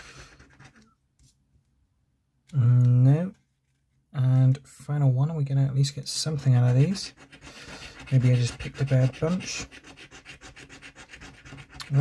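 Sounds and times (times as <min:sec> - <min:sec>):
coin scratching scratchcard: 0:06.6 - 0:12.0.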